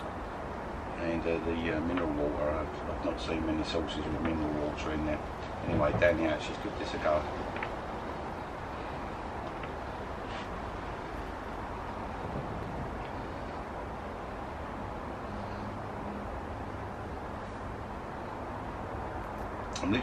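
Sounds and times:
steady hum and hiss: 0:00.0 - 0:20.0.

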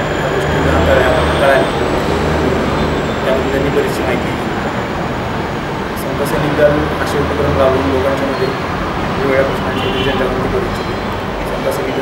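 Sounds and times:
man speaking into a microphone: 0:00.0 - 0:04.6, 0:06.0 - 0:08.6, 0:09.2 - 0:12.0.

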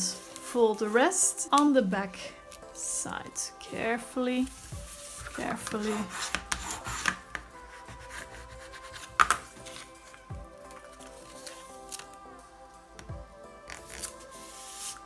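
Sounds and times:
background music with held notes: 0:00.0 - 0:15.0
packing tape rustling and clicking: 0:08.6 - 0:12.2, 0:13.0 - 0:15.0.

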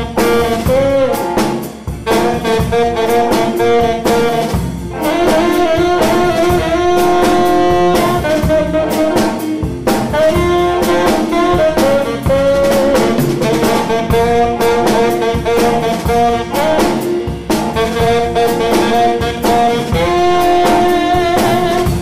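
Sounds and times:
jazz band playing: 0:00.0 - 0:22.0
saxophone lead: 0:00.0 - 0:22.0.

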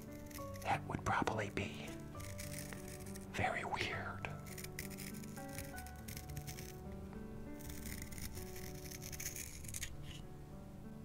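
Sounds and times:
pencil sharpener scraping: 0:00.0 - 0:00.8, 0:02.0 - 0:03.3, 0:04.3 - 0:06.8, 0:07.6 - 0:10.2
soft background music: 0:00.0 - 0:11.0.

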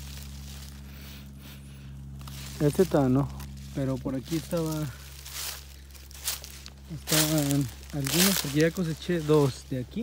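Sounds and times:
footsteps through dry grass: 0:00.0 - 0:10.0
steady low hum: 0:00.0 - 0:10.0.

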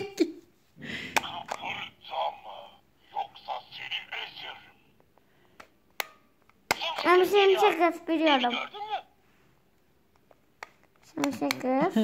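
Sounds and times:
character voice from toy speaker: 0:01.3 - 0:04.9, 0:06.7 - 0:09.1.

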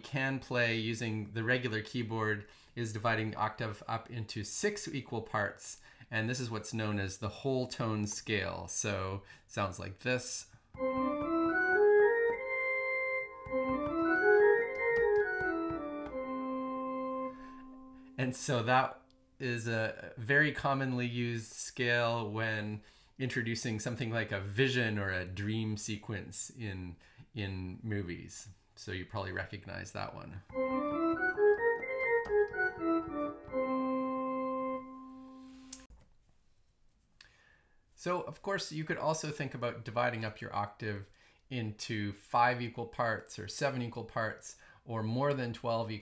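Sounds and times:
keyboard playing scale runs: 0:10.8 - 0:17.9, 0:30.5 - 0:35.4
click: 0:35.7 - 0:36.1.

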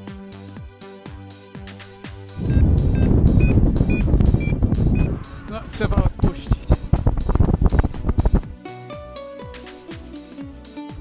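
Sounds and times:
wind buffeting microphone: 0:02.4 - 0:08.5
short high electronic beeps: 0:02.5 - 0:05.2.

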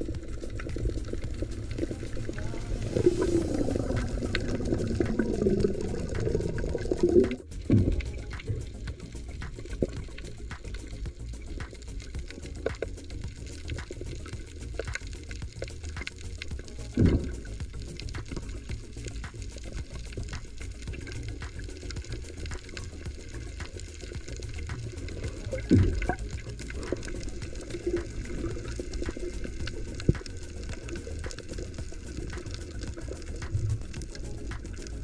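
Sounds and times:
gush of water: 0:00.0 - 0:35.0
low rumble of moving water: 0:00.0 - 0:35.0
small sharp underwater crackles: 0:00.0 - 0:35.0.

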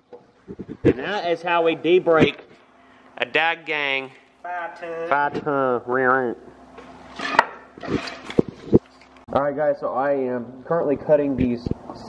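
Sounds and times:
metal scraping: 0:07.0 - 0:08.8.

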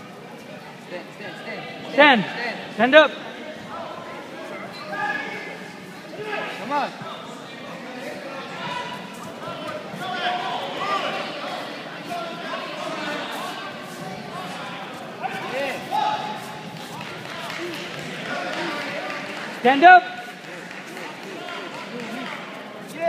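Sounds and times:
spectators and coaches talking: 0:00.0 - 0:23.0.

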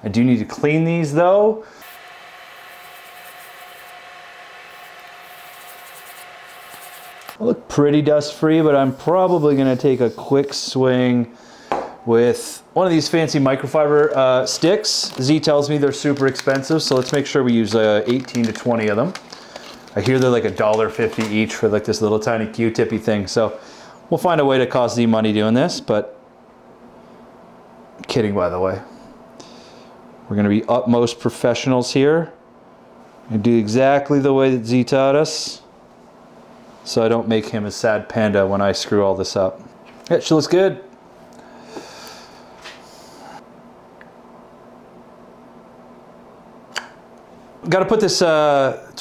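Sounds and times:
faint steady hum: 0:00.0 - 0:49.0
ventilation air hiss: 0:00.0 - 0:49.0.

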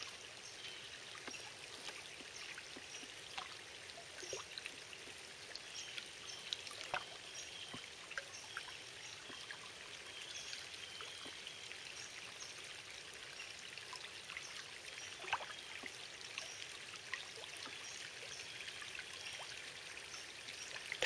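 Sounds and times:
water trickling and dripping: 0:00.0 - 0:21.0.

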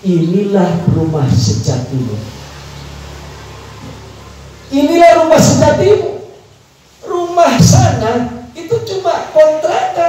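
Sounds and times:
man speaking into microphone: 0:00.0 - 0:02.4, 0:04.7 - 0:06.4, 0:07.0 - 0:10.0
low electrical hum with hiss: 0:00.0 - 0:10.0.

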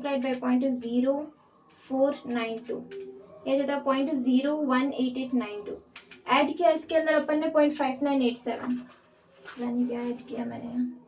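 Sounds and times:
woman speaking indistinctly: 0:00.0 - 0:08.9, 0:09.5 - 0:11.0.

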